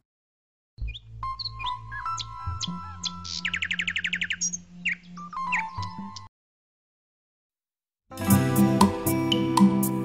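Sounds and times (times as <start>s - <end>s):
bird-like chirps: 0.8s - 6.3s.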